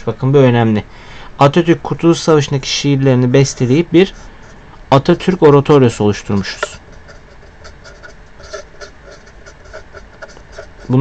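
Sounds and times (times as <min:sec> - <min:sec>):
marker writing on paper: 0:06.4 - 0:11.0.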